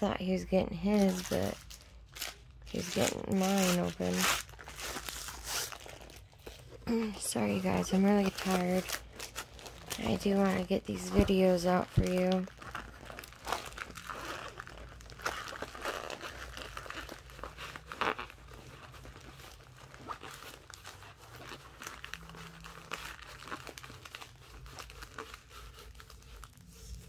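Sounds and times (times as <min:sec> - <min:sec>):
packaging crinkling and rustling: 0:00.2 - 0:27.0
sharp packaging crackles: 0:00.8 - 0:27.0.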